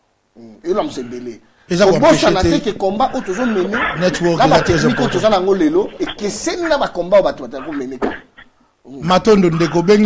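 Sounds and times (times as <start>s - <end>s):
man talking: 0.4s - 8.3s, 8.9s - 10.0s.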